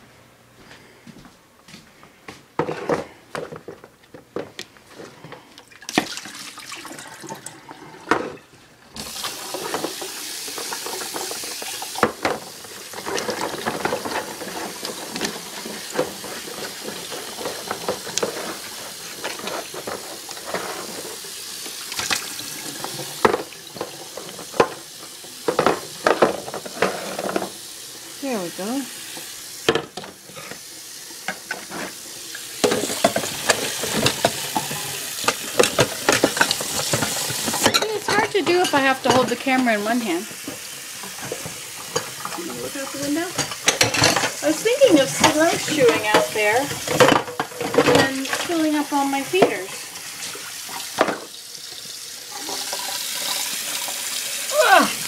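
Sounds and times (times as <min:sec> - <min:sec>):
plastic waterer clattering: 0:09.0 - 0:21.2, 0:42.4 - 0:49.8
tap running into sink: 0:40.4 - 0:54.1.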